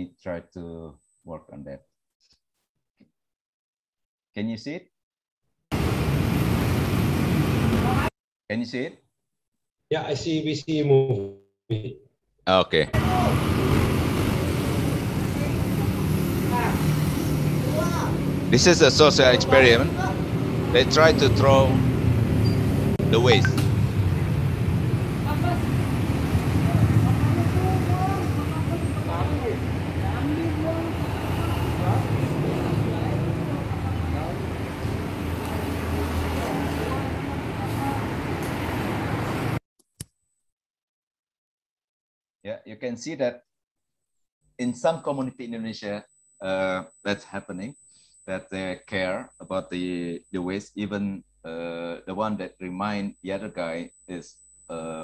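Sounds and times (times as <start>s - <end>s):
street traffic noise: 5.7s - 8.1s, 13.0s - 39.6s
motorbikes and scooters passing: 5.8s - 8.1s, 13.0s - 39.6s.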